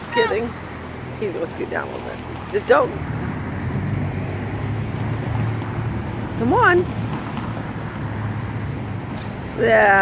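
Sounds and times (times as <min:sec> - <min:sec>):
street traffic engine rumble: 0:00.0 - 0:10.0.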